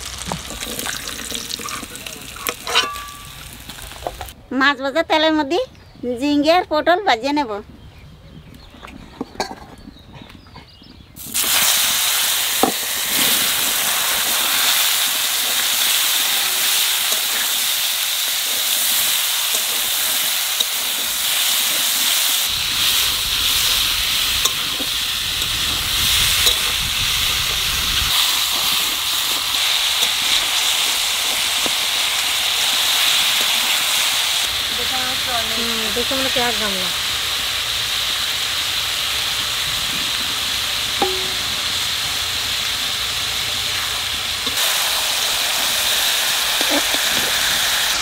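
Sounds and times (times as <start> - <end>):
vegetables sizzling in hot oil: 0.0 - 4.4, 11.2 - 48.0.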